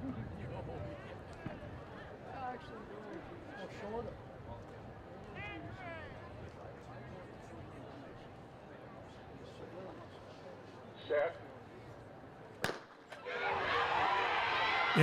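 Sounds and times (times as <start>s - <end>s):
crowd noise: 11.8s - 15.0s.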